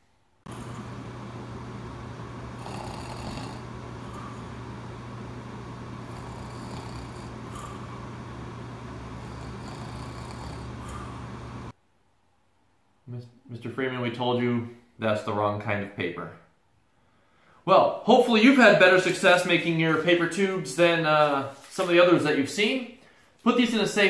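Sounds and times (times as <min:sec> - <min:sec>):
room noise: 0:00.0 - 0:24.0
low hum: 0:00.5 - 0:11.7.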